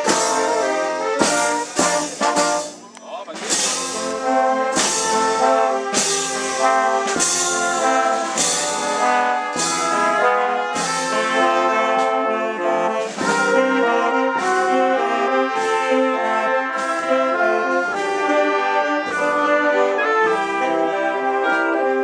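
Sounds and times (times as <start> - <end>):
brass band playing slow march: 0.0 - 22.0.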